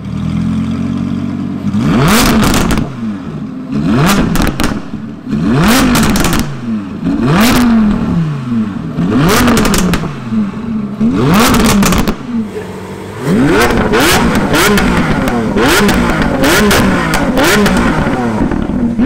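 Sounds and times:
car engine revving: 0:00.0 - 0:19.0
exhaust pops: 0:02.1 - 0:03.0, 0:04.0 - 0:05.1, 0:05.7 - 0:08.1, 0:09.0 - 0:10.3, 0:11.0 - 0:12.6, 0:13.3 - 0:19.0.

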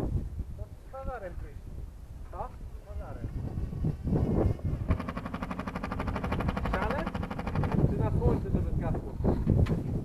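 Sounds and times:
small motor rattling: 0:02.8 - 0:08.5.

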